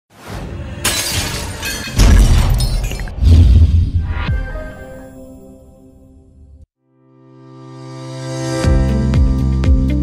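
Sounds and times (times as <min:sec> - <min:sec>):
glass shattering: 0:00.8 - 0:03.2
music: 0:04.1 - 0:10.0.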